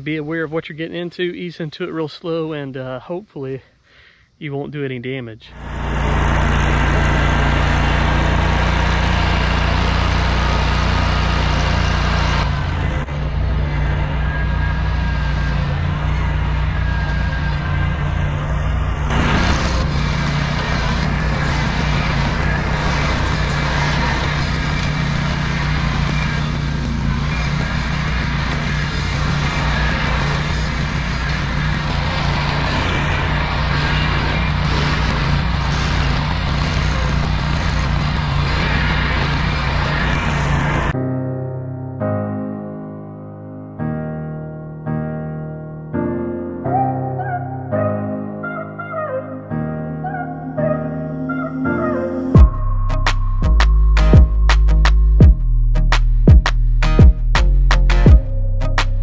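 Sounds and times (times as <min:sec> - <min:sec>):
tractor engine drone: 0:05.4 - 0:41.0, 0:50.0 - 0:59.0
mower blades whirring: 0:05.5 - 0:41.0.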